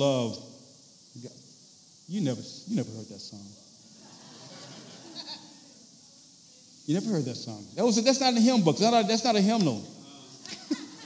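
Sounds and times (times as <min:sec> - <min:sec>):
audience laughter: 0:04.0 - 0:05.5.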